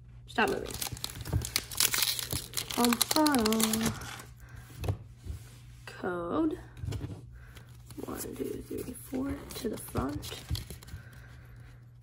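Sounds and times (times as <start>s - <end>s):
handling cards on a table: 6.8s - 11.8s.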